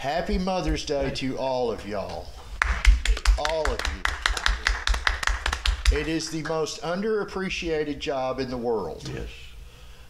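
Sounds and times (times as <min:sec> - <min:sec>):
people clapping: 0:02.6 - 0:06.7.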